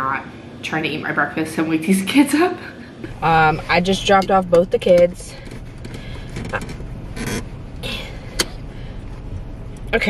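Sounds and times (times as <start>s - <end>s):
car engine idling: 3.0s - 10.0s.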